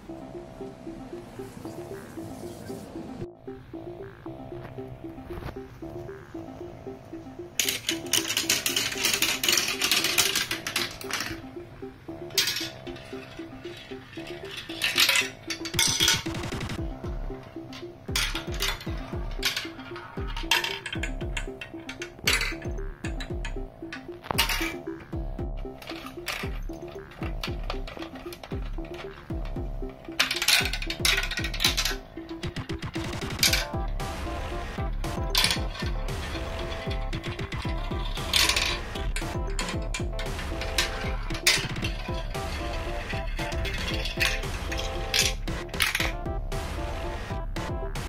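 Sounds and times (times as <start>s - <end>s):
background music: 0.0s - 48.0s
marbles rattling in plastic track: 7.6s - 16.8s, 17.6s - 46.2s.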